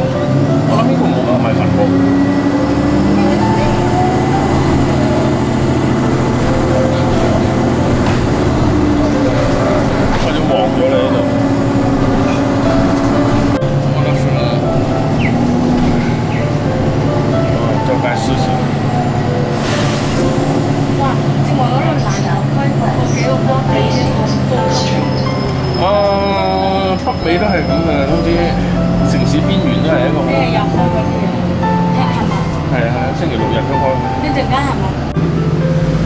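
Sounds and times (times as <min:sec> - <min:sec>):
bus engine rumble and road noise: 0:00.0 - 0:36.0.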